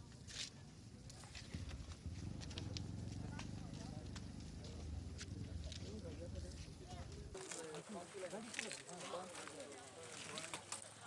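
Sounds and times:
fire low rumble: 0.8s - 7.4s.

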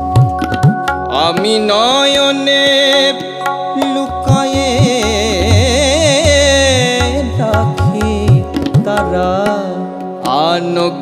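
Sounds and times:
keyboard drone: 0.0s - 11.0s.

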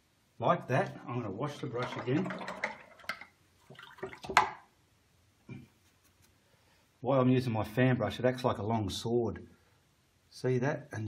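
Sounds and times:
paintbrush rinsed in water: 1.0s - 4.6s.

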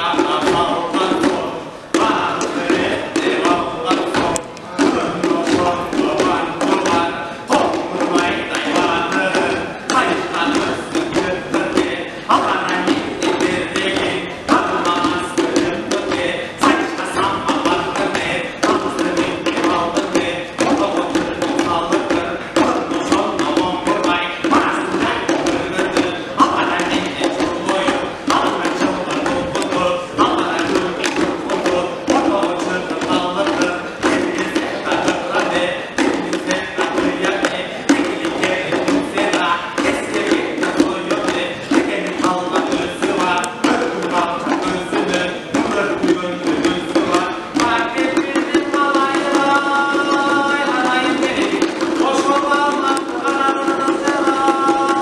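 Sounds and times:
lutes strumming fast rhythm: 0.0s - 55.0s.

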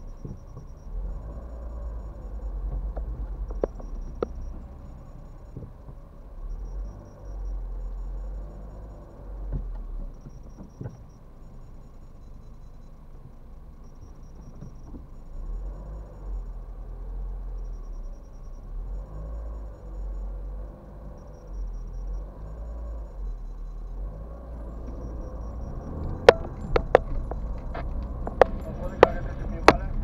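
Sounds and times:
car engine rumble inside cabin: 0.0s - 30.0s.

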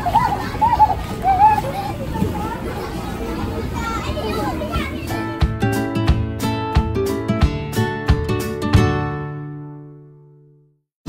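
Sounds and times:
children's voices and chatter: 0.0s - 5.7s
background hubbub: 0.0s - 6.2s.

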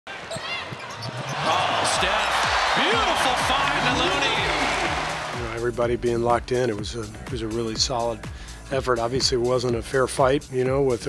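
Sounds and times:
shoes squeaking: 0.1s - 2.4s
crowd noise: 0.1s - 5.6s.

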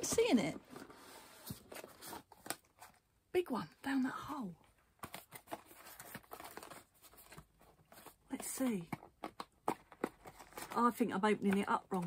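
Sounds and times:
cardboard box handled and opened: 0.0s - 3.1s, 5.0s - 12.0s
paper rustling: 5.0s - 12.0s.

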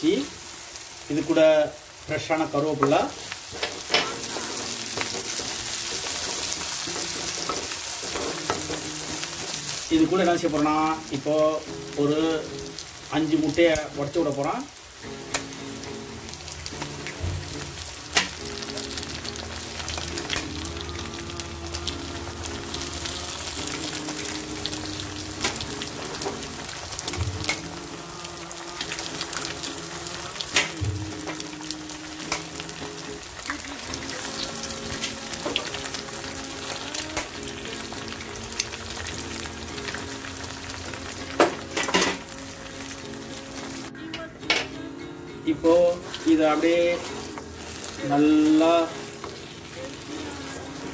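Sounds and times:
eggs sizzling in hot oil: 0.0s - 50.9s.

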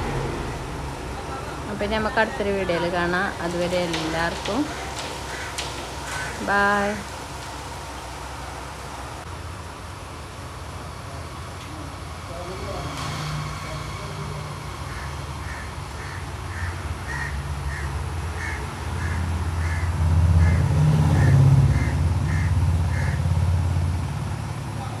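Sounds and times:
low rumble: 0.0s - 9.3s.

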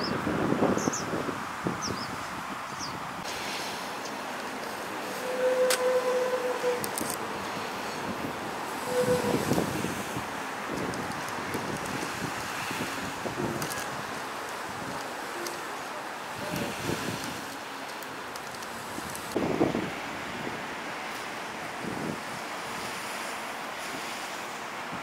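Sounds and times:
wind on microphone: 0.0s - 3.3s, 5.2s - 15.4s, 16.3s - 17.5s, 18.7s - 20.8s, 21.5s - 23.2s.

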